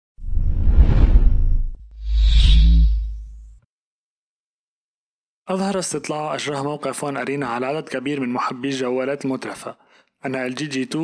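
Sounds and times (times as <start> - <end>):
deep whoosh: 0.2 - 3.5.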